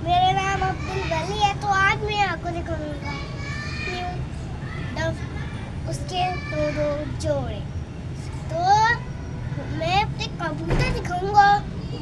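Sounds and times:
boy speaking: 0.0 - 4.3, 4.9 - 11.7.

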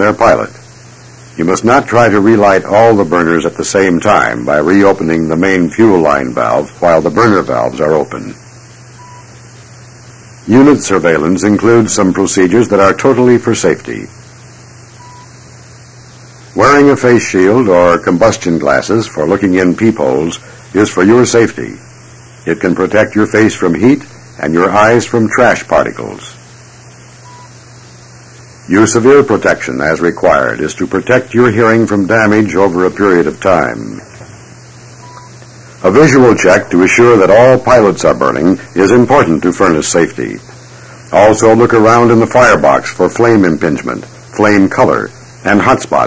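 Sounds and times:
tape hiss and hum: 0.0 - 46.0
short steady beep: 8.8 - 10.2, 14.5 - 15.5, 27.0 - 28.1, 35.0 - 35.4
faint short beep: 9.0 - 9.3, 14.9 - 15.4, 27.2 - 27.6, 35.0 - 35.4.

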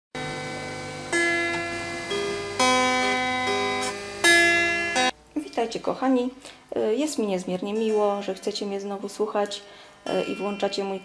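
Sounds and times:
electric guitar sustained notes: 0.2 - 5.1.

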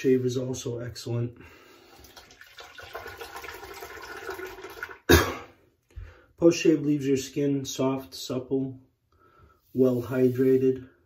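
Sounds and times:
tap water splashing into sink: 2.0 - 5.1.

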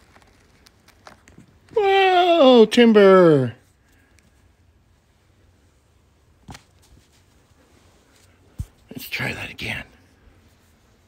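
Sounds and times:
scratching post thump on carpet: 6.4 - 7.3, 8.5 - 8.9.

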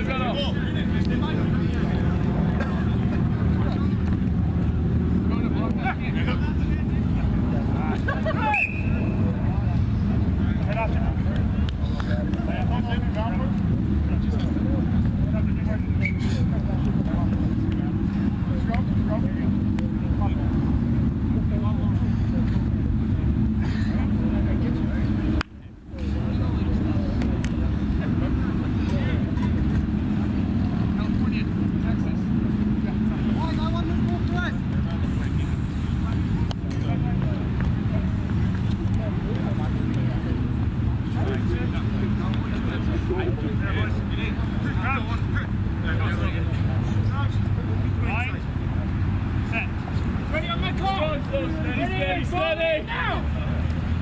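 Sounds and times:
distant players shouting: 8.3 - 9.5.

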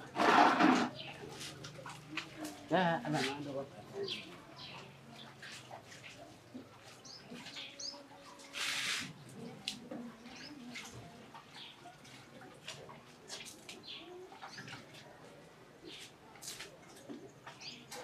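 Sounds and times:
small birds chirping: 3.9 - 8.8, 17.2 - 18.0.

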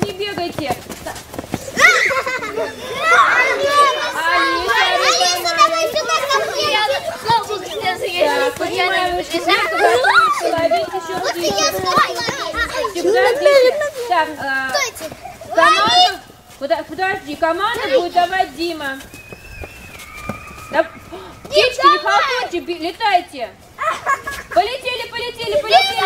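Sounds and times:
children calling out and talking: 0.0 - 26.0.

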